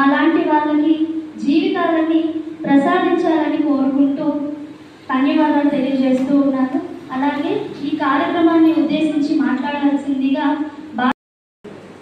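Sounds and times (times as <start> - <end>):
woman talking into a microphone: 0.0 - 11.2.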